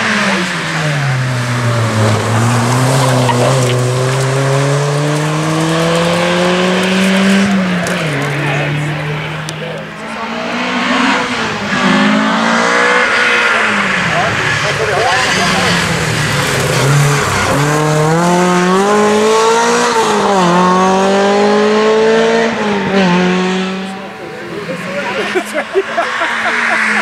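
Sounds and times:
rally car engine revving: 0:00.0 - 0:27.0.

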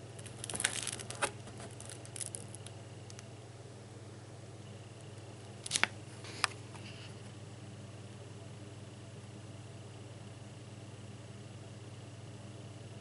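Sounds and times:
paper pages crinkling: 0:00.2 - 0:03.2, 0:05.6 - 0:07.2.

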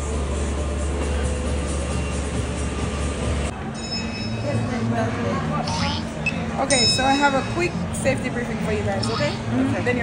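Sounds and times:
faint music: 0:00.0 - 0:10.0.

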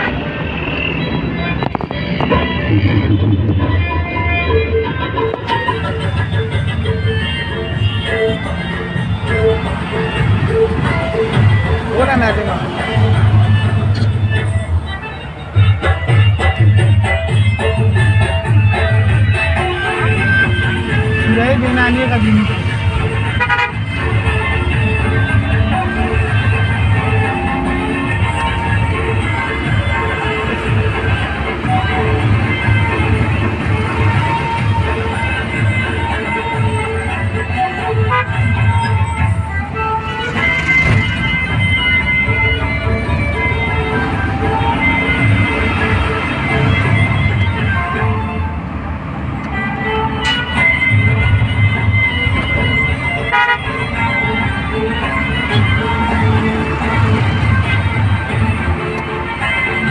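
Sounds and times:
vehicle horns: 0:00.0 - 0:15.5, 0:19.7 - 0:48.2, 0:49.8 - 0:57.8
low traffic rumble: 0:00.0 - 0:59.9
vehicle horn toot: 0:07.7 - 0:08.7, 0:23.4 - 0:23.9, 0:38.1 - 0:38.5, 0:53.3 - 0:53.7.

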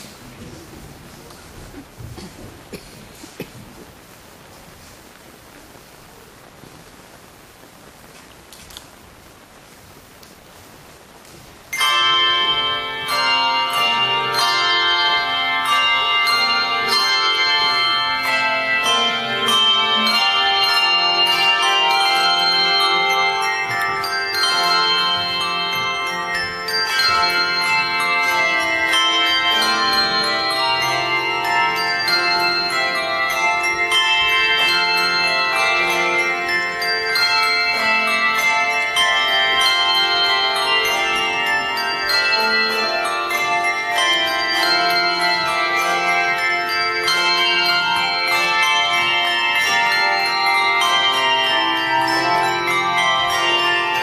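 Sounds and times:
bass bells ringing: 0:11.7 - 0:54.0
handbell choir playing chords: 0:11.7 - 0:54.0.

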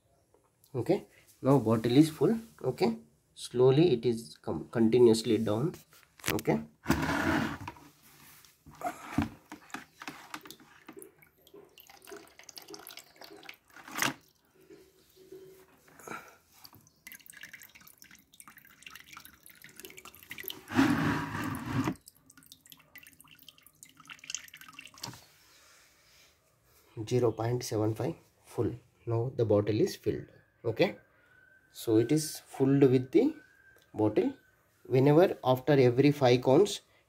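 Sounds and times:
water dripping into plastic bucket: 0:09.5 - 0:14.5, 0:16.6 - 0:20.7, 0:21.9 - 0:25.2.

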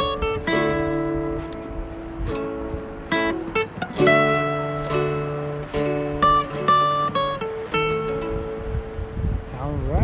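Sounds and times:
guitar and ukulele chord ringing: 0:00.0 - 0:09.4.

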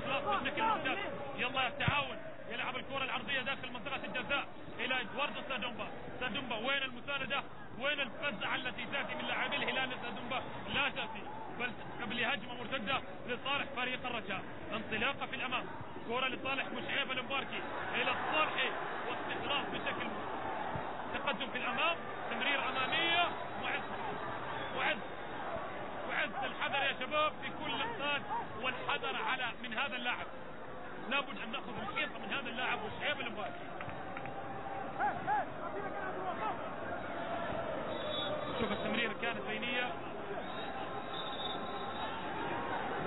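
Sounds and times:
crowd hubbub: 0:00.0 - 0:43.0.

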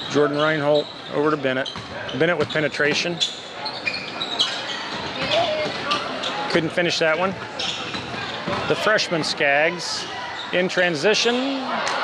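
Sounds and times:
shoe squeaks: 0:00.0 - 0:09.4, 0:10.0 - 0:11.4
echoing gym background noise: 0:00.0 - 0:12.0.

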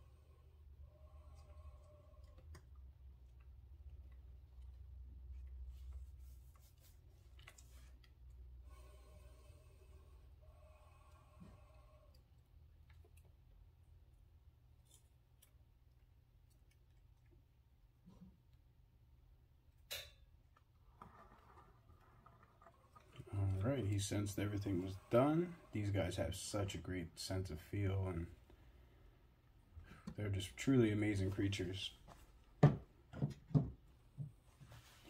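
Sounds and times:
steady low hum: 0:22.9 - 0:32.5.

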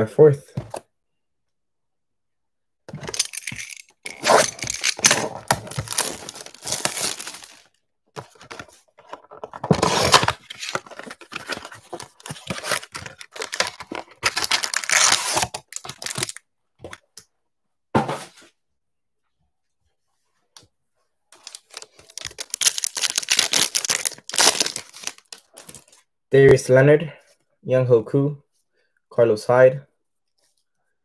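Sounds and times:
cardboard box tearing open: 0:04.1 - 0:07.6, 0:09.6 - 0:16.3, 0:21.5 - 0:25.3.

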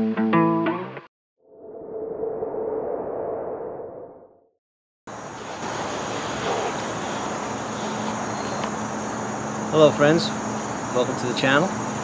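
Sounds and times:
outdoor background hiss and rumble: 0:05.1 - 0:12.0.

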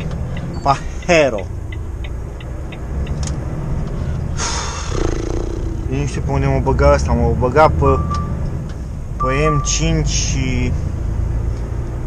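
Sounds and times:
truck diesel engine rumble: 0:00.0 - 0:11.4.

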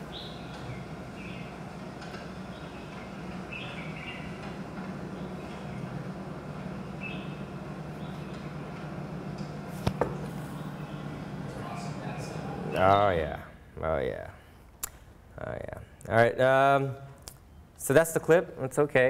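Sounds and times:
bird chirps: 0:00.0 - 0:01.6, 0:02.4 - 0:04.4, 0:07.0 - 0:08.5
steady low hum: 0:00.0 - 0:18.6.

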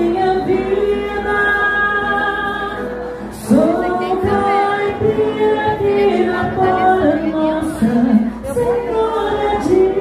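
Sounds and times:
acoustic guitars: 0:00.0 - 0:10.0
woman singing a ballad: 0:00.0 - 0:10.0.

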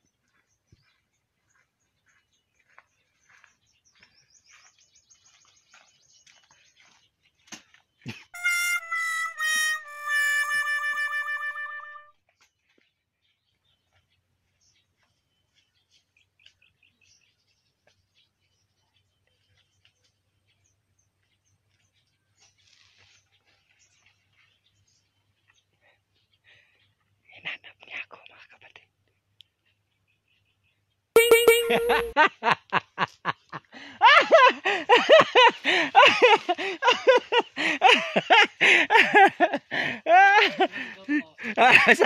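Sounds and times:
wobbling reedy comic tone: 0:08.4 - 0:12.1, 0:31.2 - 0:32.2
person whispering: 0:27.4 - 0:28.9.

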